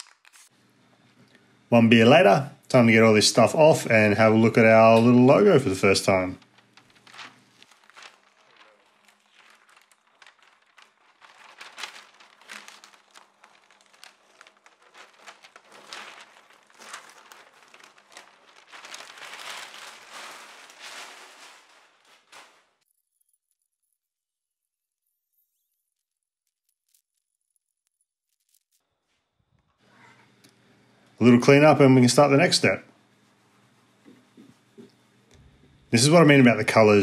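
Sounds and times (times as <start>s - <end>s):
paper and tape peeled and crumpled: 0.0s - 0.6s, 4.3s - 29.8s.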